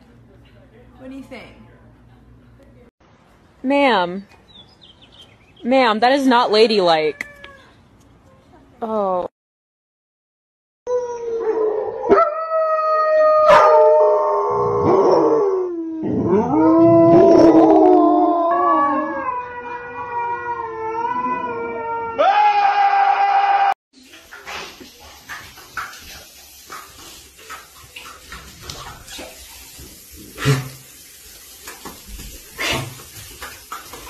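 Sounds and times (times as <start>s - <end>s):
dog howling: 10.9s - 23.8s
running water in tiled room: 23.9s - 34.0s.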